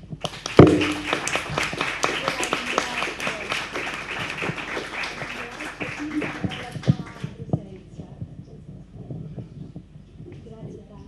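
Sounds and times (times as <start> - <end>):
audience clapping: 0.0 - 7.5.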